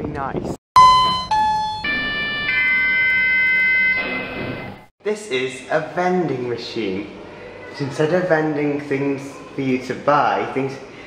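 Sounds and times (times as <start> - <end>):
electronic synthesizer jingle: 0.8 - 4.9.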